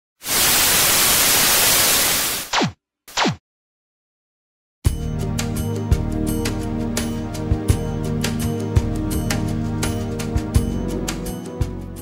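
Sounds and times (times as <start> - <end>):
television static hiss: 0.2 - 2.4.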